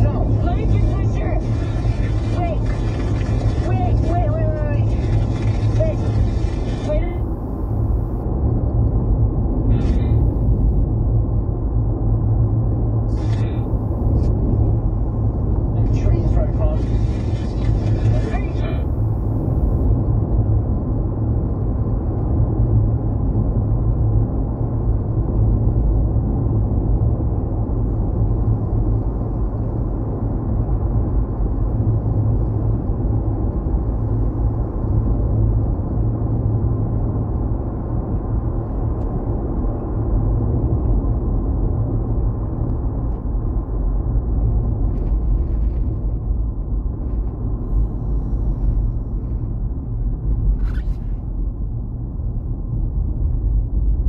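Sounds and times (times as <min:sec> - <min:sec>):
truck engine and road rumble: 0:00.0 - 0:54.0.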